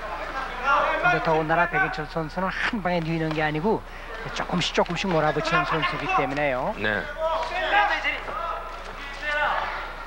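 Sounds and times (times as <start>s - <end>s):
man speaking: 0.5s - 8.5s.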